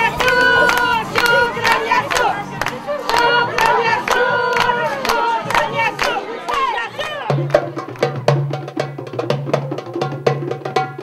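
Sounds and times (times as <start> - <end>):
women singing together: 0.0 - 7.4
hand claps: 0.0 - 8.3.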